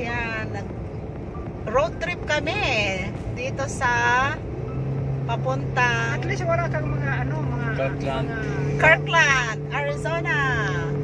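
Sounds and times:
car engine and road hum: 0:00.0 - 0:11.0.

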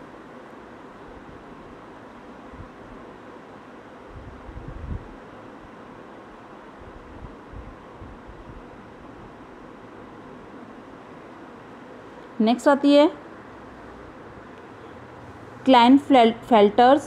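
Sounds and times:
microphone hiss: 0:00.0 - 0:17.0.

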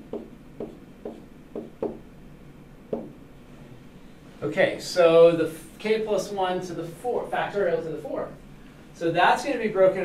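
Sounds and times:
stylus tapping on touchscreen: 0:00.0 - 0:02.0, 0:02.9 - 0:03.2.

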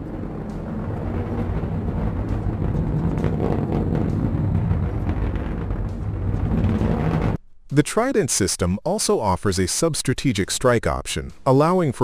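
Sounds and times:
rocket motors rumbling: 0:00.0 - 0:07.4.

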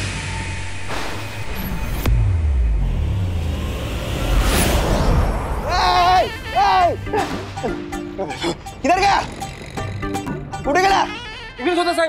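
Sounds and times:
sharp hit: 0:00.0 - 0:05.7
low drone tones: 0:00.0 - 0:10.7
whoosh: 0:00.8 - 0:05.7.

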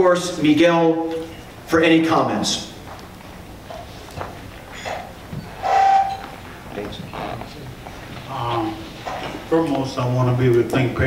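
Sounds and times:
brief ringing tone: 0:05.6 - 0:06.2.

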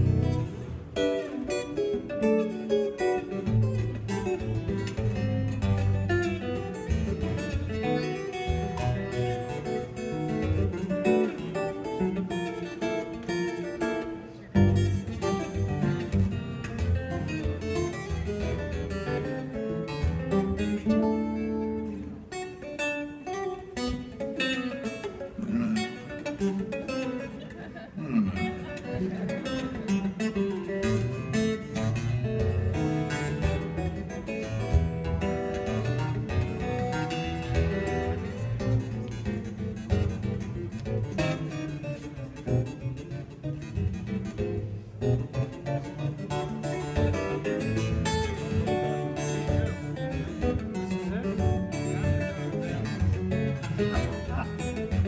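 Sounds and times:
fingerstyle acoustic guitar: 0:00.0 - 0:55.0.

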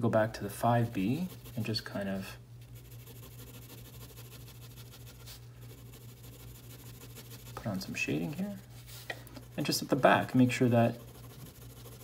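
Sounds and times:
steady low hum: 0:00.0 - 0:12.0
pencil scratching on paper: 0:00.5 - 0:02.2, 0:02.8 - 0:08.4, 0:09.4 - 0:12.0.

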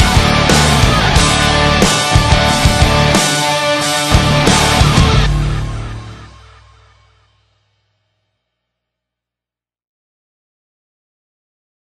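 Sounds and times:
final chord of pop-punk song: 0:00.0 - 0:07.3.

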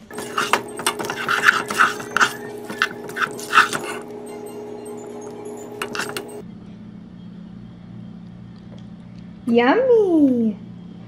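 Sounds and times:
spoon scraping in saucepan: 0:00.0 - 0:06.4
steady hum: 0:00.0 - 0:08.4.

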